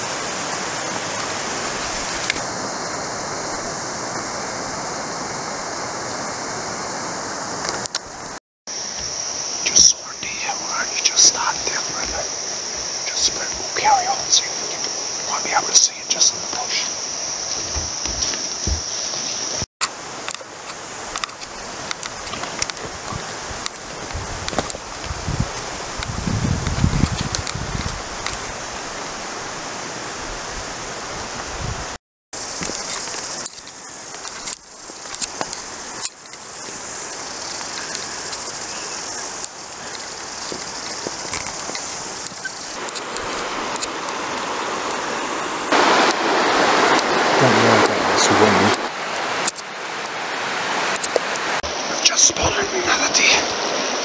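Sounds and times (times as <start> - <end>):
river rushing: 0.0 - 54.0
footsteps through grass: 1.5 - 2.4, 16.6 - 19.7
vegetation and gear rustling: 1.5 - 2.6, 8.8 - 29.4.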